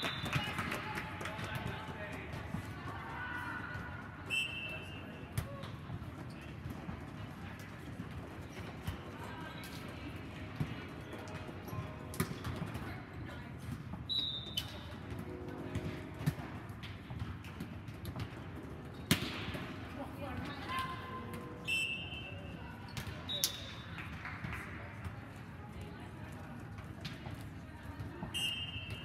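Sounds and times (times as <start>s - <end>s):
volleyball hits and thumps: 15.3s - 19.8s.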